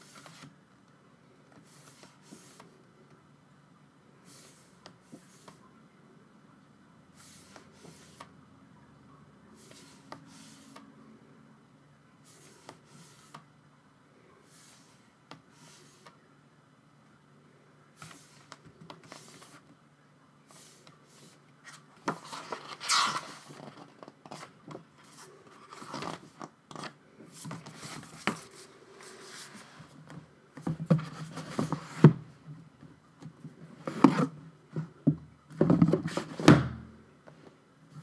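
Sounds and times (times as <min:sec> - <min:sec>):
paper pages rustling: 0:21.7 - 0:29.8.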